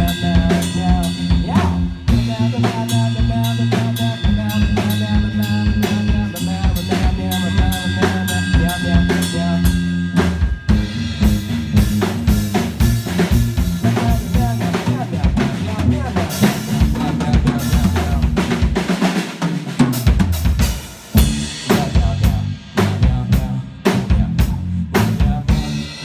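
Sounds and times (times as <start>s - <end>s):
low electric bass notes: 0.0s - 18.9s, 20.1s - 26.0s
drum kit beat: 0.0s - 26.0s.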